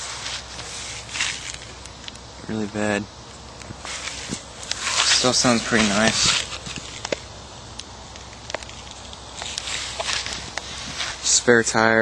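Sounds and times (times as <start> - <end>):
rustling: 0.0 - 2.2, 3.6 - 7.4, 8.1 - 11.6
steady low hum: 0.0 - 12.0
footsteps: 3.6 - 7.3.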